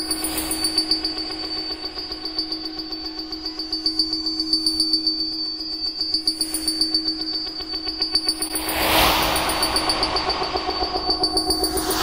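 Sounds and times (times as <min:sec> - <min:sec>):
high ringing pulsing tones: 0:00.0 - 0:12.0
faint high sweep: 0:08.4 - 0:12.0
low synthesizer drone: 0:08.5 - 0:12.0.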